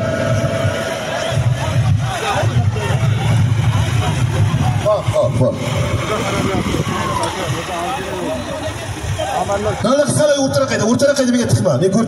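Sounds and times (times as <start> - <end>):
low rumble: 0.0 - 10.2
crowd of men talking: 0.0 - 12.0.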